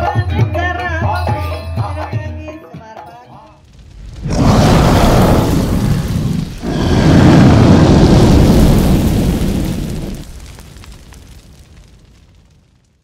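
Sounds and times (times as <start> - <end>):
deep thunder-like rumbling: 3.7 - 12.4.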